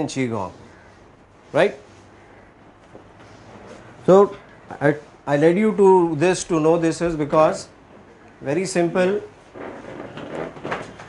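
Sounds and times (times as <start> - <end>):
furniture scraping: 9.4 - 11.0.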